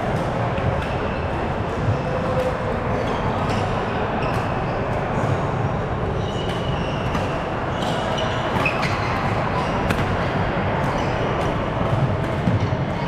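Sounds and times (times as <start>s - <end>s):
racket hitting shuttlecock: 9.7s - 12.7s.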